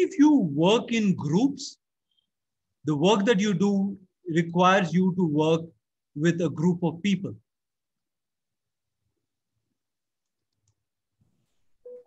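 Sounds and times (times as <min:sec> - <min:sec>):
clear steady tone: 0:11.6 - 0:12.0.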